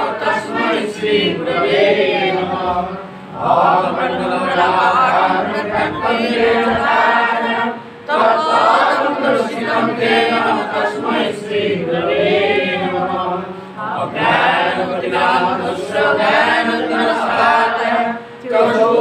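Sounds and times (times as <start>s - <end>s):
group chanting a prayer: 0.0s - 19.0s.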